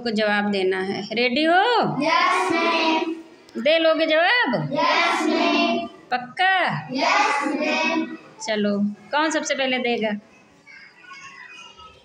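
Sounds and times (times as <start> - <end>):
faint children's voices murmuring: 6.9 - 9.5, 10.1 - 12.0.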